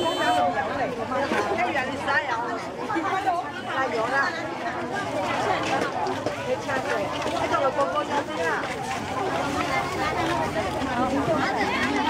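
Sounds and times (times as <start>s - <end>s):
market crowd chatter: 0.0s - 12.0s.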